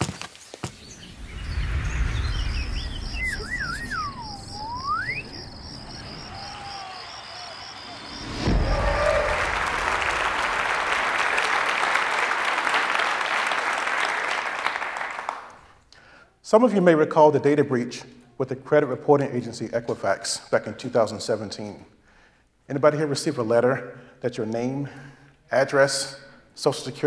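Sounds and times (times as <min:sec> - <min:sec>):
low rumble: 0:00.7 - 0:06.8, 0:07.9 - 0:11.7
warbling whistle: 0:00.8 - 0:12.0
audience applauding: 0:03.3 - 0:15.7
thump: 0:08.2 - 0:10.6.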